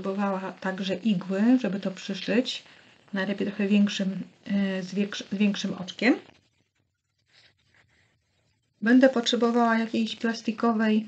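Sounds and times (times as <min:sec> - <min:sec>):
person speaking: 0:00.0 - 0:06.4
faint soft rustles: 0:00.0 - 0:11.0.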